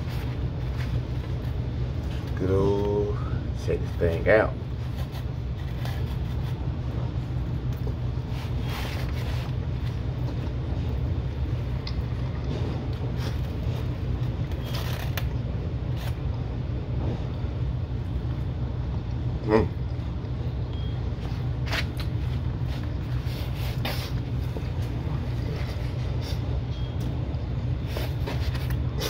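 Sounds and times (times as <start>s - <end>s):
low machine hum: 0.0s - 29.0s.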